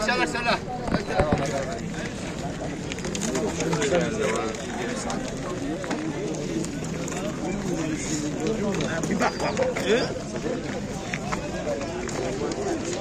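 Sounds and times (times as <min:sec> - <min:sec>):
people talking indistinctly: 0:00.0 - 0:13.0.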